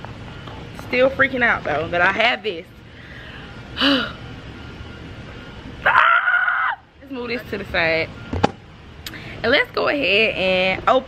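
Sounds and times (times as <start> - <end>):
woman squealing: 5.8 - 6.9.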